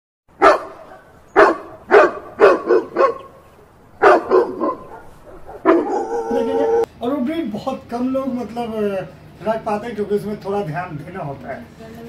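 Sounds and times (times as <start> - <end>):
dog barking: 0.4 - 3.4, 4.0 - 6.9.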